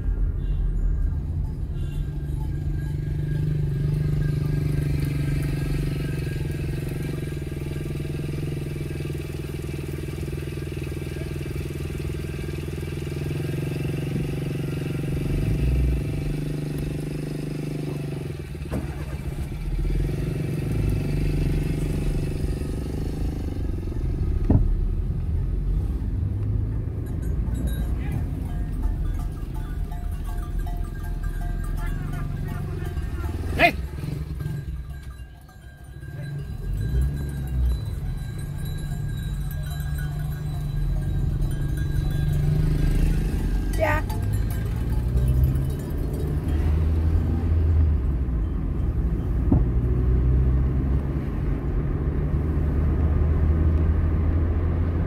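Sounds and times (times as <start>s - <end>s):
vehicle engine droning: 0.0s - 55.0s.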